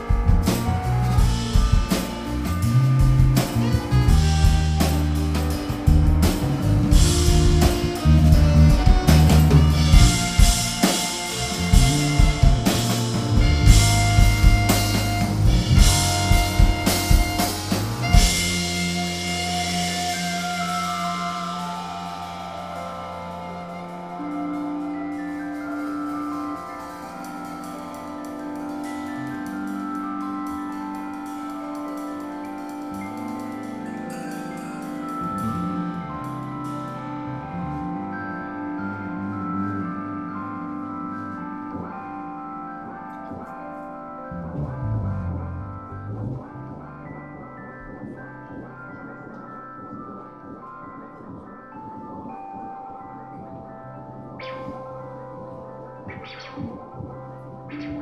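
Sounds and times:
jazz quartet music: 0.0s - 49.4s
electric guitar notes: 0.0s - 58.0s
keyboard notes: 0.0s - 58.0s
low bass notes: 0.0s - 58.0s.

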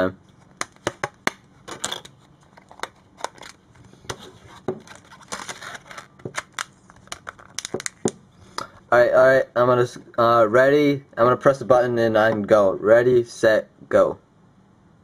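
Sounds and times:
plastic clicks and snaps: 6.3s - 8.7s.

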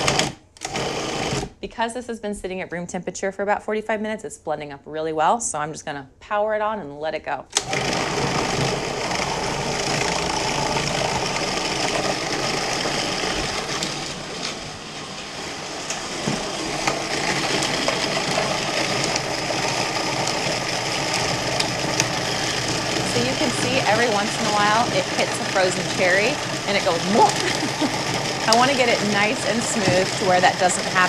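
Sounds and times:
food processor motor running: 0.0s - 1.6s, 7.6s - 31.0s.

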